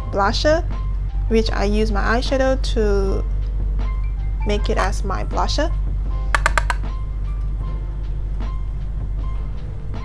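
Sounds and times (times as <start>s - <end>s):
mellow instrumental music: 3.4s - 10.0s.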